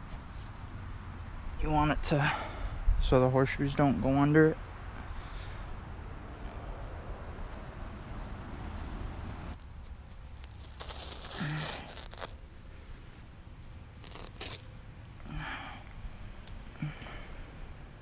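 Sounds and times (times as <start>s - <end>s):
fabric rustling and crinkling: 9.3s - 14.7s.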